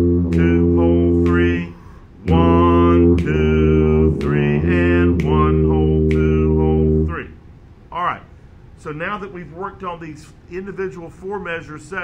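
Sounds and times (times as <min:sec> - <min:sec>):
tuba playing waltz melody: 0:00.0 - 0:07.2.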